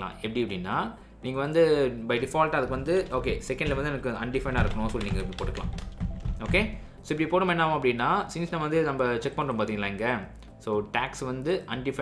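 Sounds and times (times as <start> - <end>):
keyboard key clicks: 3.0 - 6.7.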